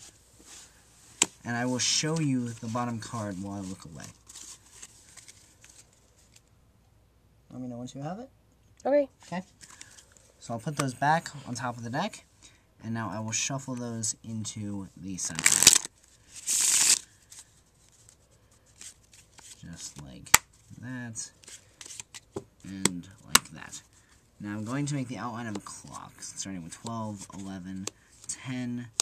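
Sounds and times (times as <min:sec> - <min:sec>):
playing cards rustling and clicking: 0:00.4 - 0:06.5, 0:09.6 - 0:11.0, 0:15.3 - 0:20.7, 0:21.3 - 0:23.8, 0:24.6 - 0:26.0, 0:26.6 - 0:29.0
playing cards riffle shuffle: 0:15.3 - 0:20.6, 0:21.3 - 0:23.8.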